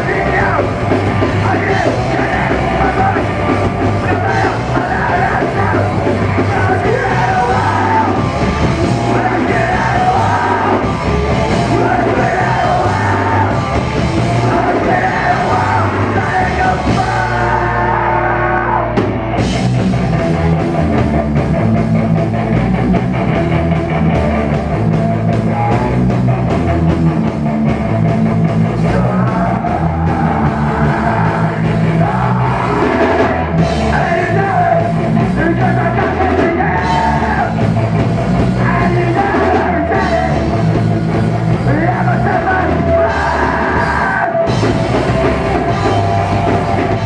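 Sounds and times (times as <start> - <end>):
bass guitar: 0.0 - 47.0
drums: 0.0 - 47.0
electric guitars: 0.0 - 47.0
punk band playing live: 0.0 - 47.0.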